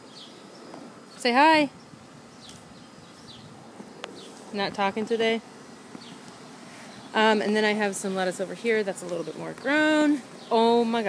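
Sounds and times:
faint bird chirps: 0.0 - 4.4.

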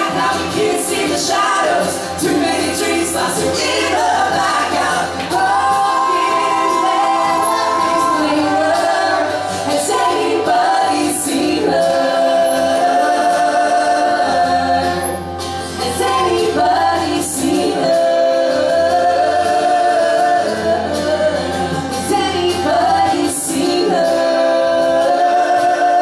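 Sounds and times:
acoustic guitar: 0.0 - 26.0
woman and man singing: 0.0 - 26.0.

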